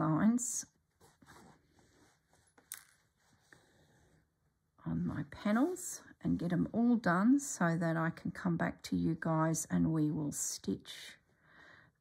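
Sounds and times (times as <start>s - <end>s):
needle and thread through fabric: 0.0s - 4.4s.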